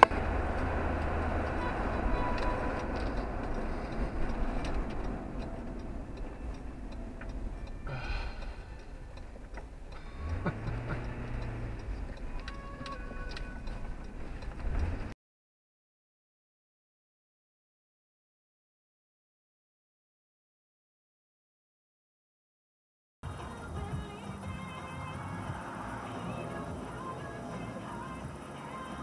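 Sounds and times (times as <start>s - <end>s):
car road and engine noise: 0.0s - 15.2s, 23.2s - 29.0s
turn signal ticking: 0.0s - 15.2s, 23.3s - 29.0s.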